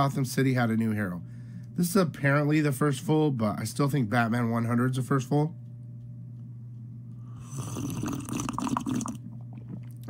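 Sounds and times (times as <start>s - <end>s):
person slurping a drink: 7.3s - 9.9s.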